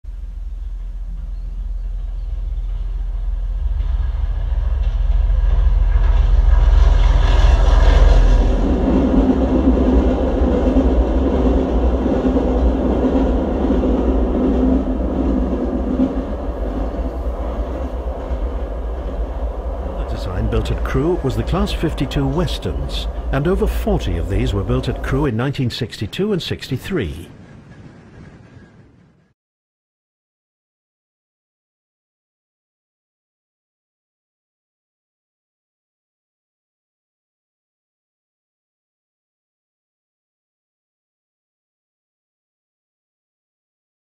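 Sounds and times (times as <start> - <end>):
diesel locomotive engine rumble: 0.1 - 29.3.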